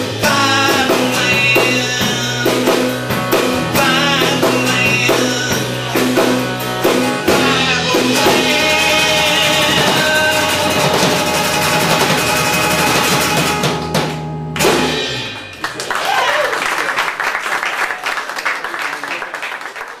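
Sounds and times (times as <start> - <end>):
acoustic and electric guitars: 0.0 - 15.9
audience applauding: 15.2 - 20.0
audience voices: 15.3 - 20.0.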